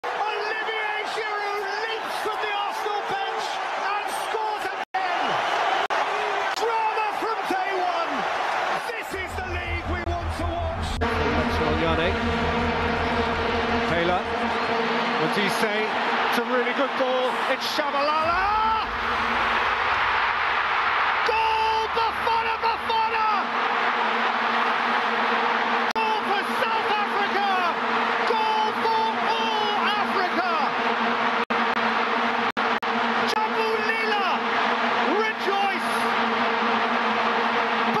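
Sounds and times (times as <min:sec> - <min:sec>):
excited commentator speaking: 0:00.0 - 0:05.4, 0:06.3 - 0:12.2, 0:15.2 - 0:18.9, 0:21.2 - 0:23.5, 0:26.0 - 0:30.7, 0:33.3 - 0:34.4, 0:35.0 - 0:36.2
stadium crowd cheering: 0:00.0 - 0:38.0.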